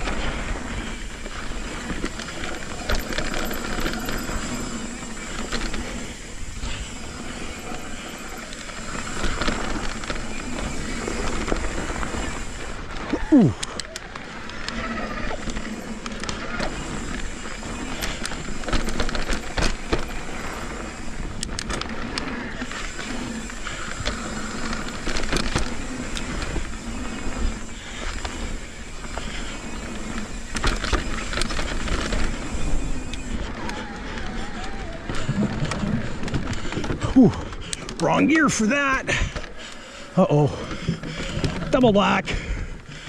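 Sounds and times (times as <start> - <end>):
bike chain and frame rattling: 0.0 - 43.0
tyres crunching over dirt and gravel: 0.0 - 43.0
wind rumbling on camera: 0.0 - 43.0.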